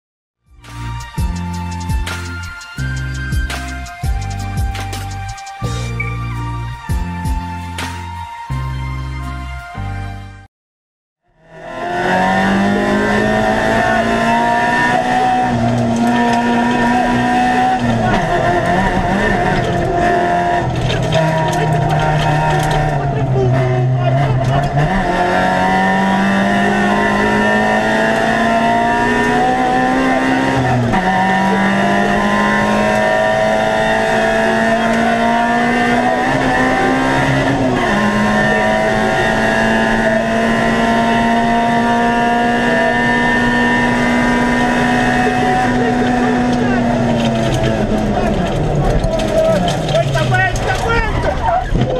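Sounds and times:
rally car engine revving: 0:11.3 - 0:51.9.

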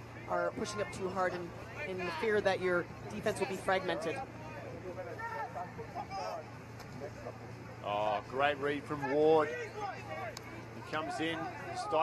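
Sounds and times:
faint voices: 0:00.0 - 0:12.0
steady low hum: 0:00.0 - 0:12.0.

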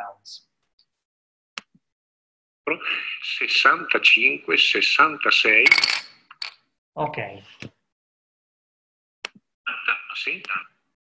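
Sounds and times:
man counting aloud: 0:02.7 - 0:05.6.

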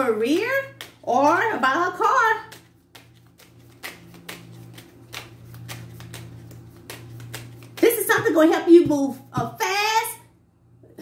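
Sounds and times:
steady low hum: 0:00.0 - 0:11.0
cards being shuffled: 0:00.2 - 0:01.6, 0:02.4 - 0:08.9.

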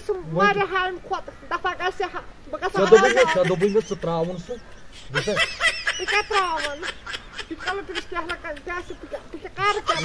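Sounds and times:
person speaking: 0:00.0 - 0:10.0
person snickering and laughing: 0:02.8 - 0:10.0.

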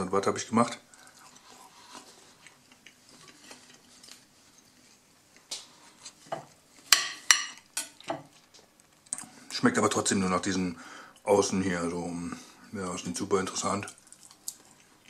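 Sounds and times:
faint handling sounds: 0:00.9 - 0:09.6.

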